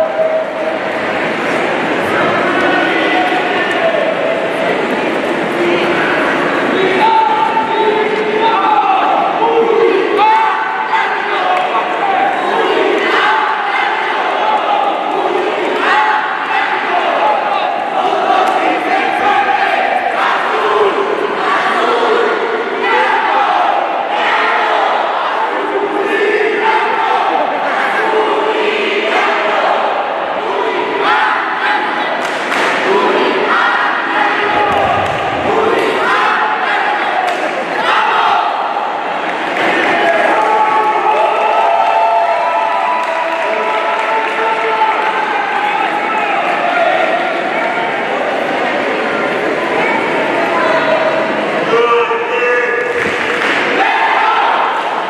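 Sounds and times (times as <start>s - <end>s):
cheerleaders chanting in unison: 0.0s - 55.0s
crowd noise: 0.0s - 55.0s.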